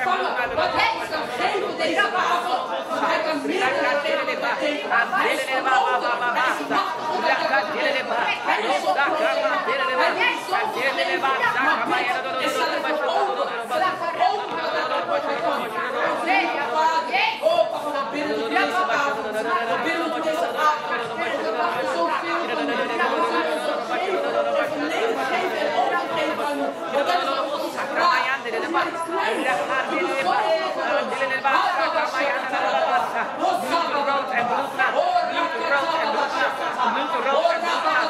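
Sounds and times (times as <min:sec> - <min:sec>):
voices praying: 0:00.0 - 0:38.0.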